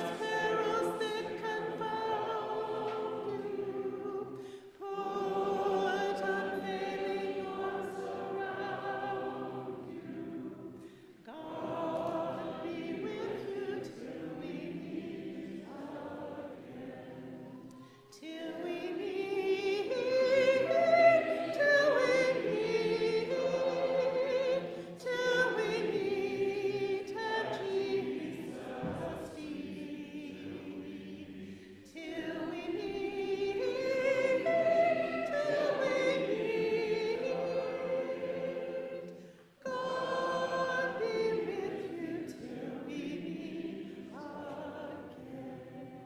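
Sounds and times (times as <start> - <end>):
congregation singing a hymn: 0.0 - 46.0.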